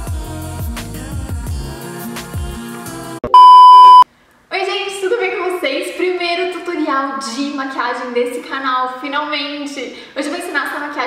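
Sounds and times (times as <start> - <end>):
electronic beep: 3.3 - 4.0
woman speaking: 4.5 - 11.0.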